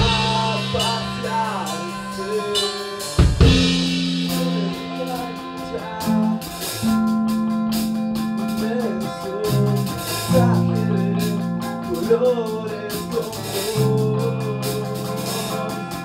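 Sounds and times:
guitar lines: 0.0 - 16.0
rock band playing: 0.0 - 16.0
loud drum hit: 3.2 - 5.8.

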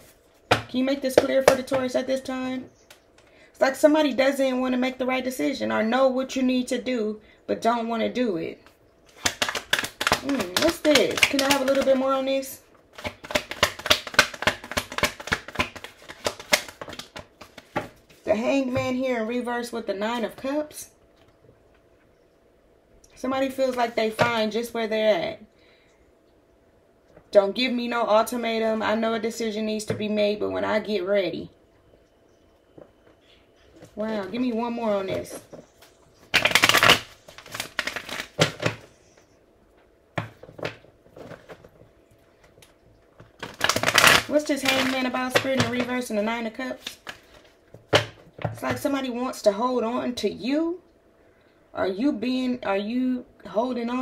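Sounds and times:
cards being shuffled: 9.1 - 18.2, 34.3 - 39.0.

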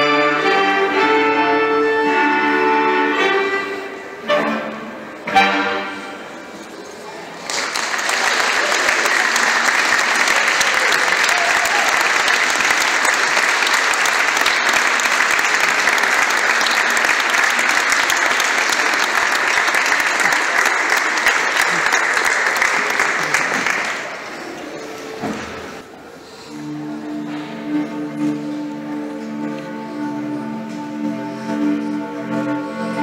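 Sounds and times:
audience applauding: 7.3 - 25.0.

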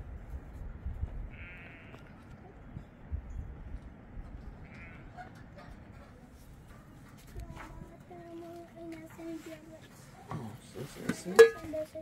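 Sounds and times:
pot lid clanking on metal pot: 11.1 - 11.8.

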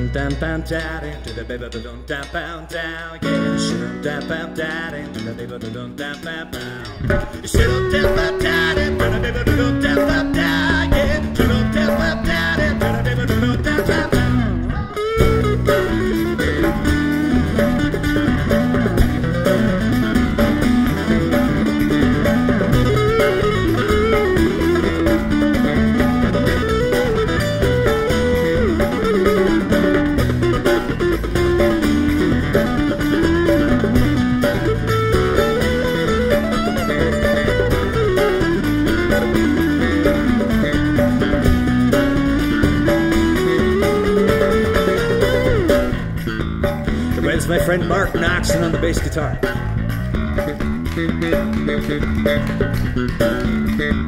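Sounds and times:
electric bass guitar: 0.0 - 54.0
strummed acoustic guitars: 0.0 - 54.0
hand drum: 0.1 - 54.0.

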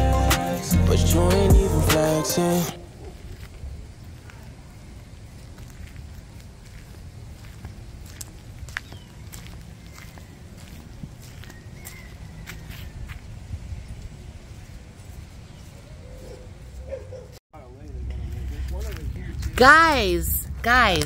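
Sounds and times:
steady low rumble: 17.7 - 21.0.

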